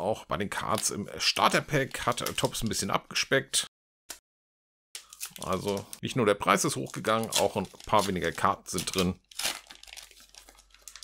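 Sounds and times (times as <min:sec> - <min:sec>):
wrapper crinkling and tearing: 0:05.0 - 0:06.0, 0:06.7 - 0:11.0.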